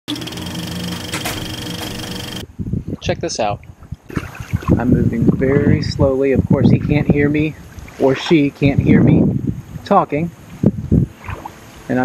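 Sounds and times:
dense steady buzz with held tones: 0.1s - 2.4s.

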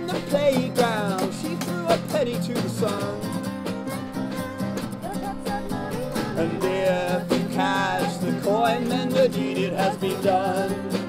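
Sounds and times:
snare drum: 0.0s - 3.0s, 5.5s - 11.0s
acoustic guitars strumming: 0.0s - 11.0s.

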